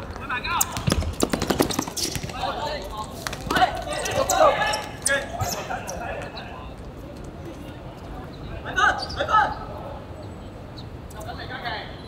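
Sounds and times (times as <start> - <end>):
players calling out: 0.2 - 6.8
football thuds on hard court: 0.7 - 2.5.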